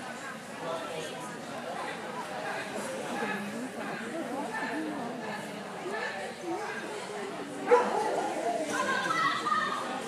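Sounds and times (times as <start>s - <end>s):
background chatter of people: 0.0s - 10.0s
dog barking: 7.7s - 8.2s.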